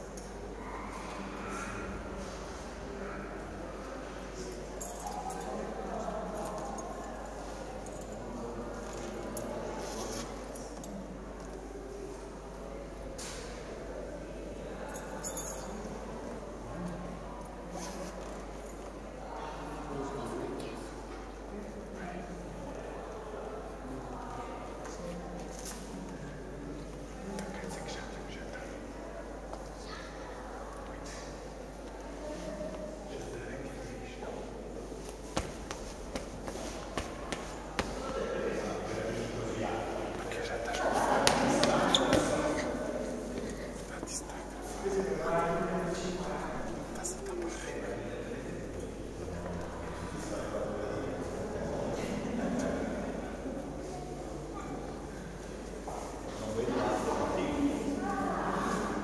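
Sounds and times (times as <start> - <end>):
audience murmur: 0.0 - 59.0
shuffling: 34.9 - 38.8
footsteps on hard floor: 35.3 - 38.2.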